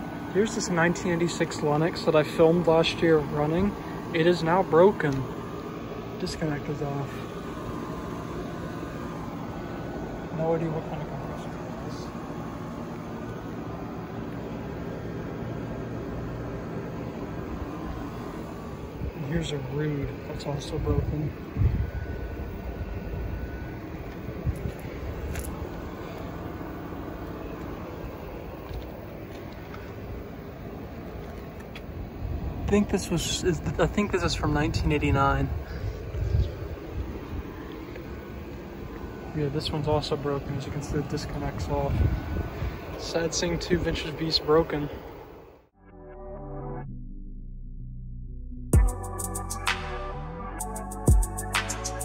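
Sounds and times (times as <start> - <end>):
background hum and hiss: 0.0 - 45.8, 48.8 - 52.0.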